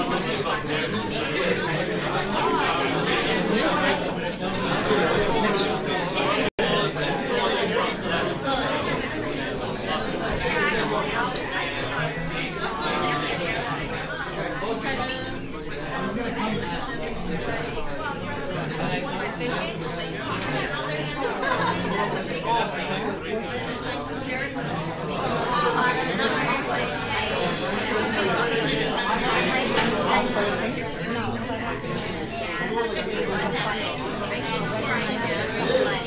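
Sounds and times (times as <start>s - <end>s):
overlapping conversations: 0.0s - 36.0s.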